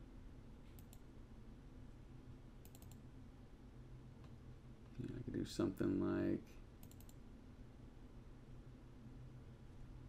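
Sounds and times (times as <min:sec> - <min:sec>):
low room hum: 0:00.0 - 0:10.0
faint computer mouse clicks: 0:00.7 - 0:01.1, 0:02.6 - 0:03.0, 0:06.8 - 0:07.2.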